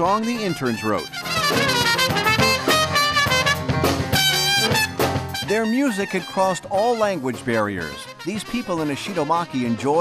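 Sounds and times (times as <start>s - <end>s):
live band playing: 0.0s - 10.0s
trumpet melody: 0.0s - 10.0s.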